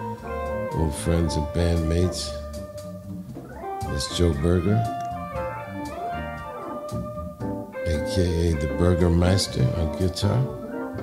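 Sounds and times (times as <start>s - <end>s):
electric guitar bending notes: 0.0s - 11.0s
organ chords: 0.0s - 11.0s.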